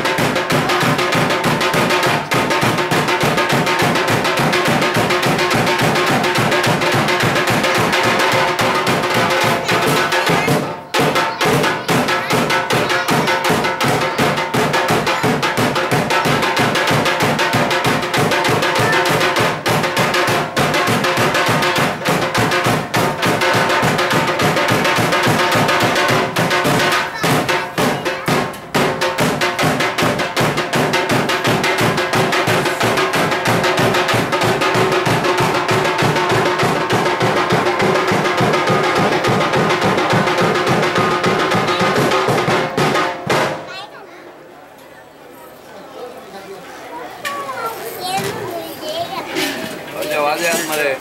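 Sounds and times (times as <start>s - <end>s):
barrel drums beaten fast: 0.0s - 43.7s.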